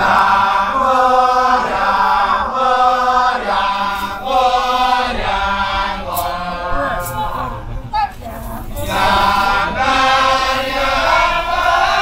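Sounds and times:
men chanting together: 0.0s - 12.0s.

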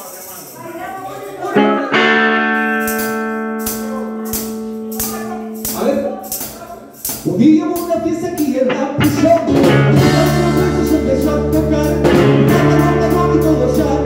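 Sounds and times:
band chord ringing: 1.6s - 6.5s, 9.5s - 14.0s
light percussion strikes: 2.6s - 8.0s
person singing: 8.7s - 14.0s.

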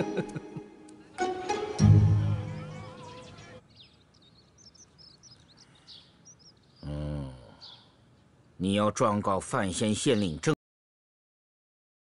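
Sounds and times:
birds chirping: 1.0s - 10.6s.

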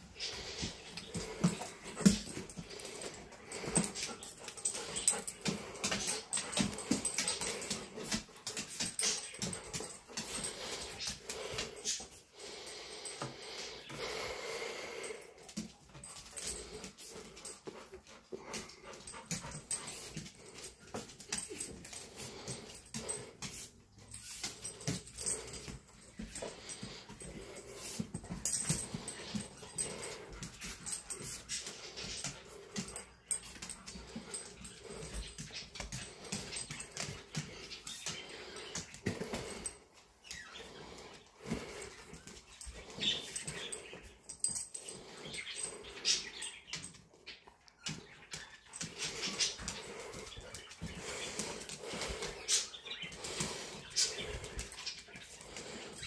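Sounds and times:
dog sniffing and snuffling: 0.0s - 56.0s.

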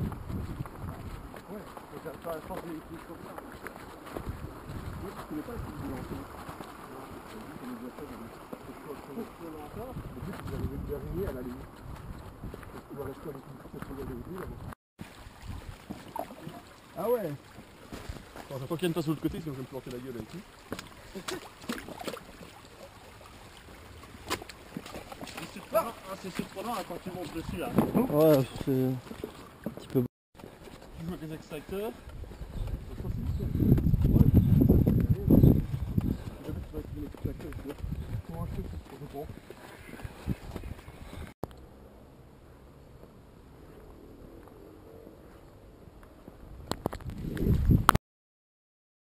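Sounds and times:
stream running over stones: 0.4s - 12.1s, 15.0s - 32.0s.

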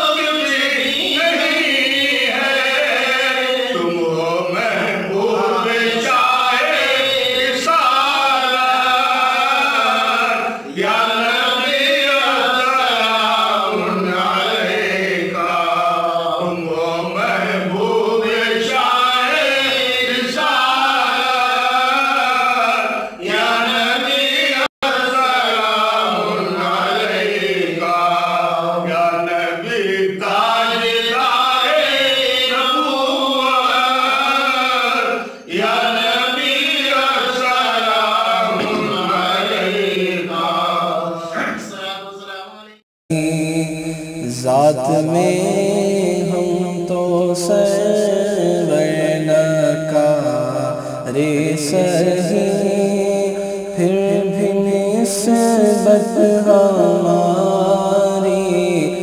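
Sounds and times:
man chanting devotional recitation: 0.0s - 59.0s.

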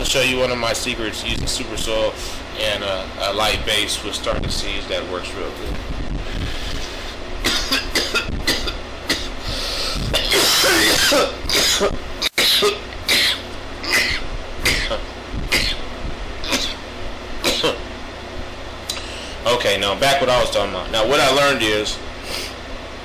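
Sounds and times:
man coughing: 7.4s - 9.4s, 10.1s - 15.8s, 16.4s - 16.8s, 17.4s - 17.8s.

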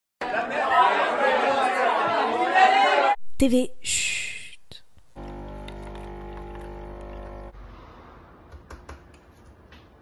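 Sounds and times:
coffee machine pump humming: 5.2s - 7.5s.

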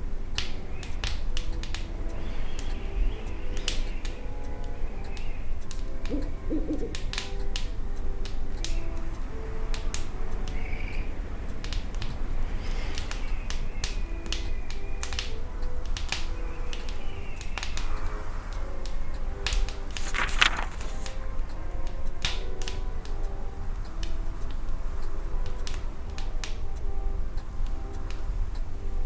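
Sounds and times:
soft melody from radio: 0.0s - 29.0s
wood fire crackling in stove: 0.0s - 29.0s
owl hooting: 2.1s - 7.5s.

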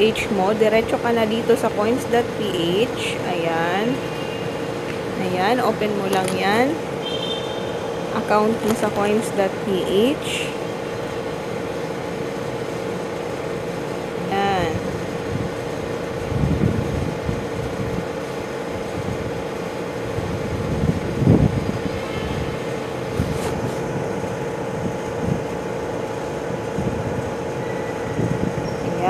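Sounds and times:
background hum and rumble: 0.0s - 29.0s.

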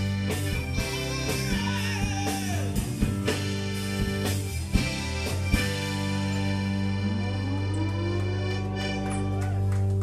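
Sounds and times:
accordion: 0.0s - 10.0s
electric guitar: 0.0s - 10.0s.

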